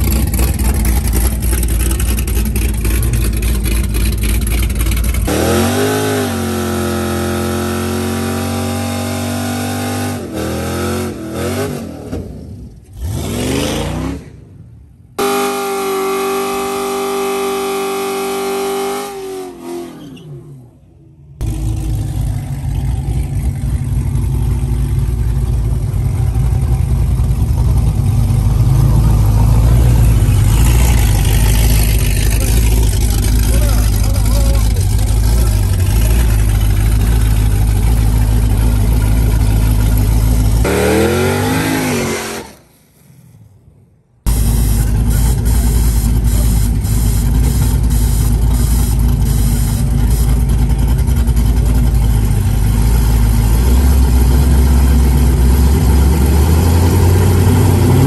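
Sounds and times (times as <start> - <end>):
car engines idling and revving: 0.0 - 58.0.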